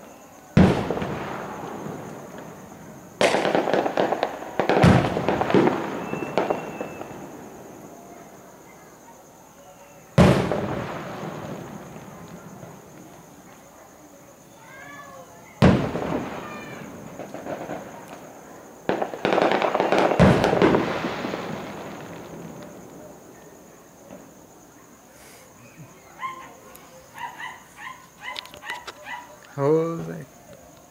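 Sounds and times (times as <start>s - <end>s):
dog yipping: 26.1s - 29.5s.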